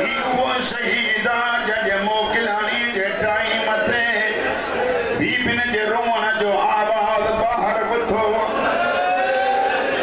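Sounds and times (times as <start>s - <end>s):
man chanting through loudspeaker: 0.0s - 8.6s.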